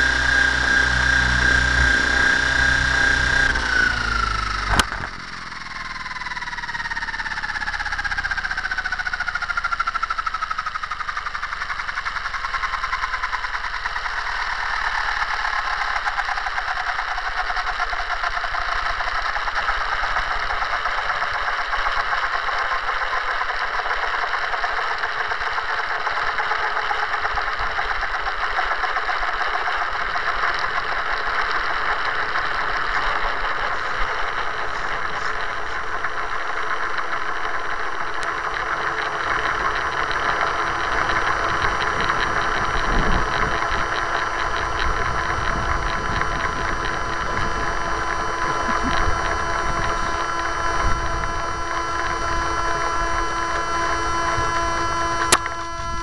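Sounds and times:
model helicopter winding down: 0:00.0 - 0:56.0.

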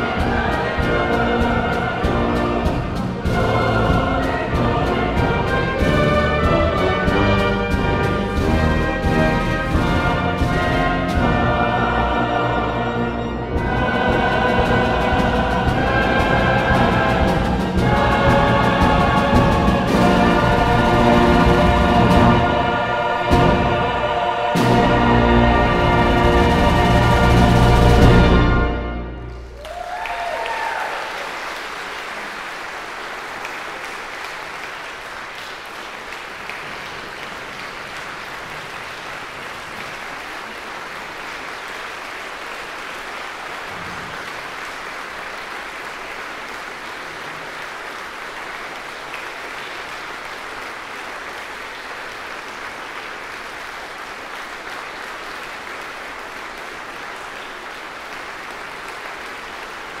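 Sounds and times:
large audience applauding: 0:29.3 - 1:00.0.

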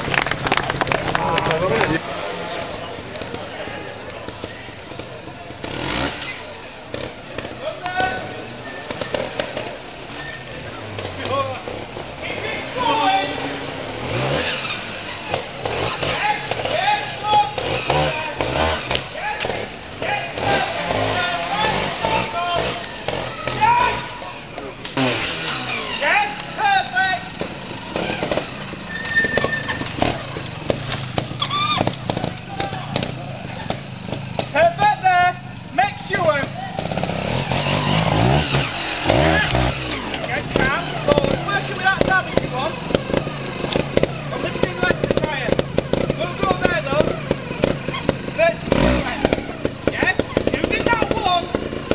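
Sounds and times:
chatter of voices: 0:00.0 - 0:51.9
motorcycle engine revving: 0:00.0 - 0:51.9.

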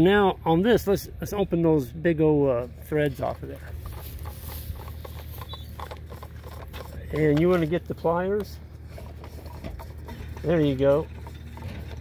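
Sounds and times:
low steady rumble: 0:00.0 - 0:12.0
plastic pipe fitting clicks and scratches: 0:03.5 - 0:12.0.

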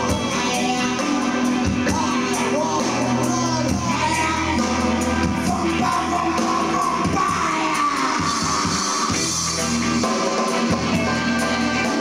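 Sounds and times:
live dub band playing: 0:00.0 - 0:12.0.

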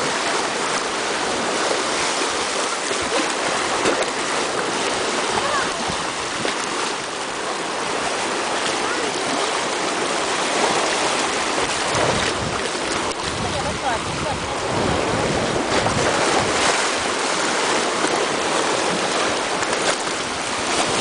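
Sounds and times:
seawater rushing over rocks: 0:00.0 - 0:21.0.

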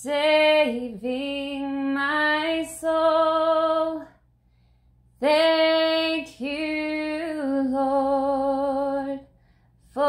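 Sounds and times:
woman singing unaccompanied: 0:00.0 - 0:04.2, 0:05.2 - 0:09.3.

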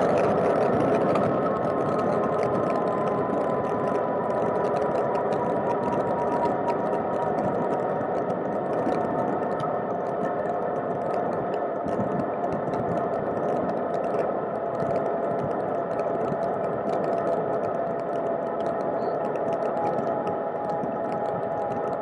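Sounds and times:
faint steady hum: 0:00.0 - 0:22.0
small clicks and rattles: 0:00.0 - 0:22.0
wind: 0:00.0 - 0:22.0.

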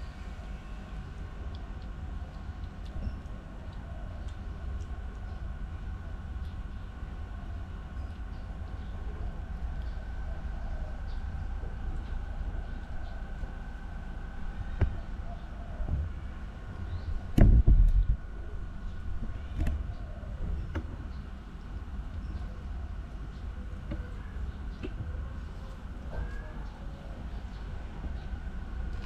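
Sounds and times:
faint hum: 0:00.0 - 0:29.0
low background rumble: 0:00.0 - 0:29.0.

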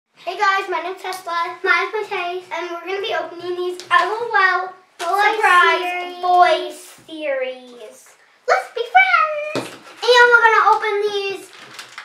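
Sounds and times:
young girl talking: 0:00.2 - 0:11.6.

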